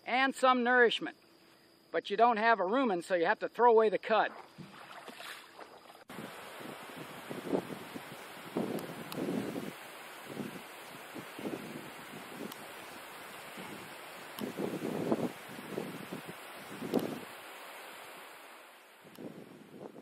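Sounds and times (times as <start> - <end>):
wind on microphone: 6.1 - 17.4, 19.0 - 20.0.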